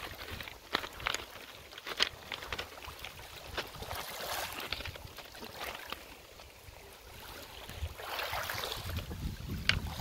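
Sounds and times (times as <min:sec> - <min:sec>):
waves lapping on pebbles: 0:00.0 - 0:10.0
wind buffeting microphone: 0:06.7 - 0:10.0.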